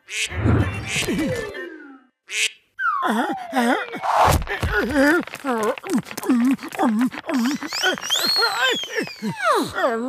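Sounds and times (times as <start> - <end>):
cartoon duck quacking: 0.1 - 1.0, 2.3 - 2.6
tone sliding downward: 0.3 - 2.0.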